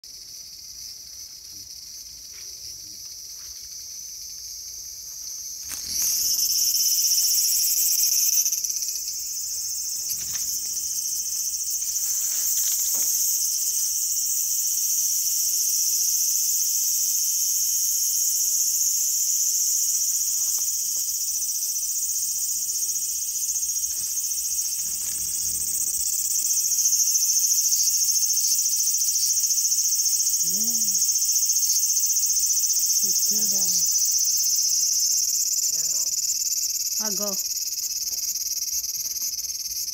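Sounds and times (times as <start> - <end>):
cicadas buzzing: 0.0 - 39.9.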